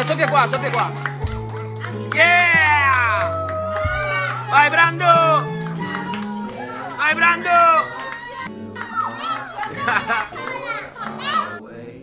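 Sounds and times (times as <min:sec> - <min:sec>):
music playing: 0:00.0 - 0:12.0
children shouting excitedly: 0:01.8 - 0:11.6.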